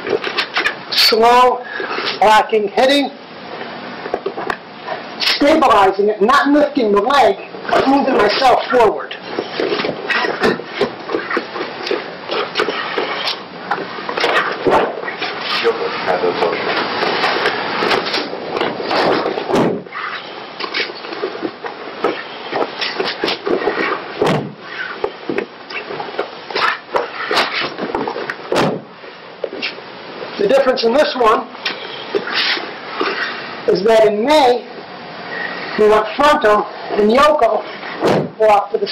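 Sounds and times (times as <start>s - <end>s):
noisy background: 0.0s - 38.9s
bodies thudding onto a mat: 17.0s - 20.0s, 21.5s - 25.5s, 26.6s - 29.0s, 38.0s - 38.4s.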